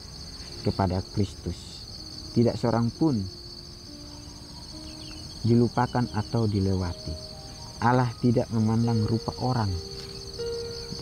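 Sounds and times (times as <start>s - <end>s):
insects chirring in grass: 0.0s - 11.0s.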